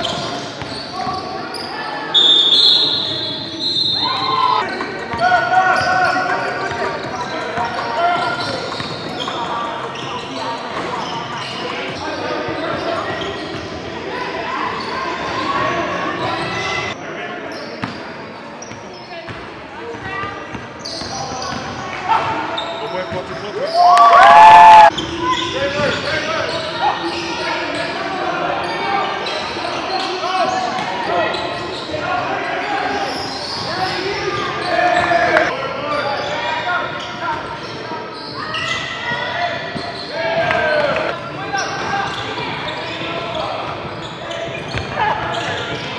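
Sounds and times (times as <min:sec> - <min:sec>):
basketball bouncing on court: 0:44.5 - 0:45.9.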